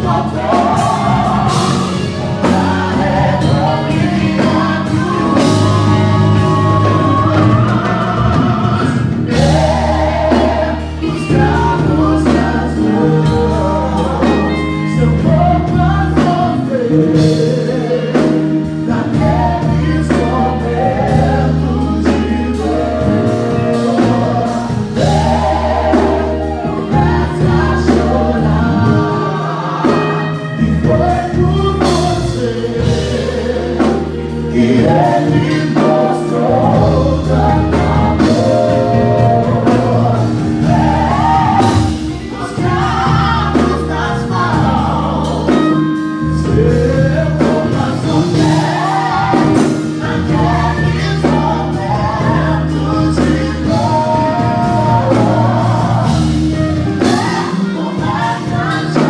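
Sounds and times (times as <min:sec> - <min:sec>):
bass guitar: 0:00.0 - 0:59.0
electric guitar: 0:00.0 - 0:59.0
keyboard: 0:00.0 - 0:59.0
vocalists singing in harmony: 0:00.0 - 0:59.0.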